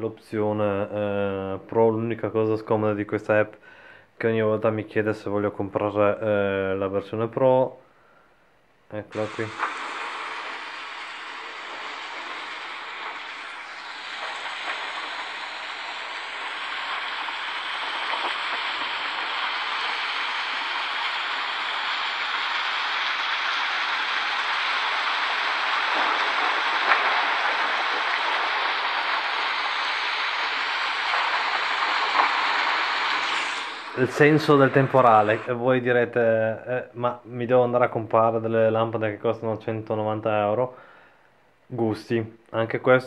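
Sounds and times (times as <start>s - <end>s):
rain hiss through small speaker: 9.0s - 36.8s.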